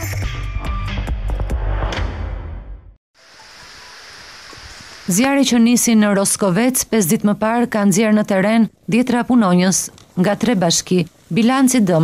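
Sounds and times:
outdoor field ambience hiss: 0:03.2 - 0:12.0.

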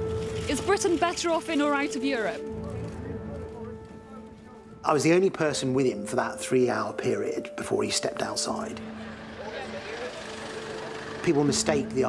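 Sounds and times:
traffic hum: 0:00.0 - 0:12.0
indistinct crowd chatter: 0:08.8 - 0:12.0.

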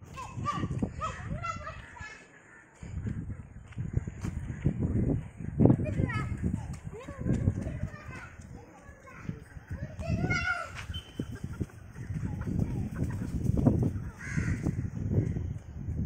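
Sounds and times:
chickens clucking: 0:00.6 - 0:15.1.

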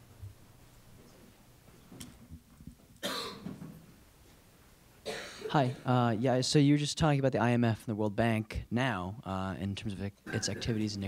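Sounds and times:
short cough: 0:03.0 - 0:03.6, 0:05.0 - 0:05.8, 0:10.2 - 0:10.8.

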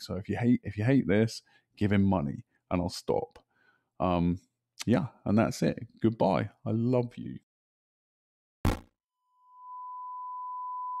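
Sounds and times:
steady electronic pure tone: 0:08.7 - 0:11.0.

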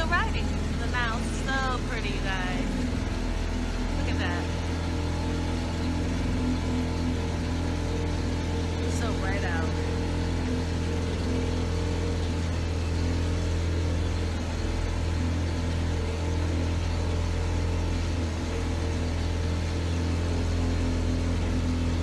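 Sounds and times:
motorboat engine droning: 0:00.0 - 0:22.0.

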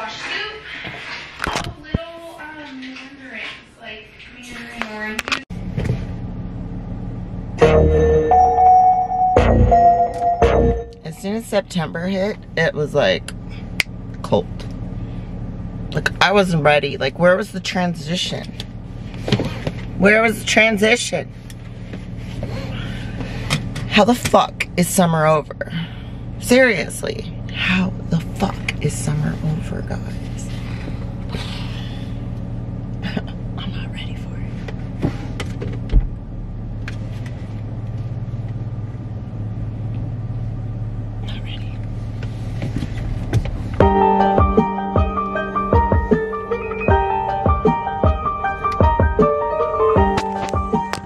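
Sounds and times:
car engine rumble inside cabin: 0:04.7 - 0:51.0.

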